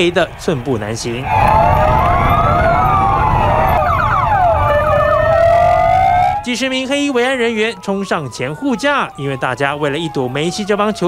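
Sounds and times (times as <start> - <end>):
emergency sirens wailing: 0.0 - 11.0
low rumble: 1.2 - 6.4.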